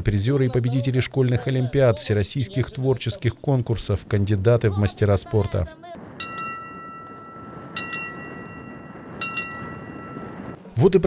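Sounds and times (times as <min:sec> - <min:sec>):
hand bell ringing: 0:06.2 - 0:10.6.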